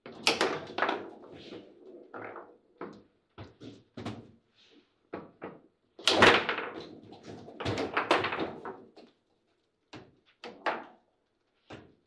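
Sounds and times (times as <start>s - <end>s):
table football ball and rods clattering: 0.1s - 4.3s.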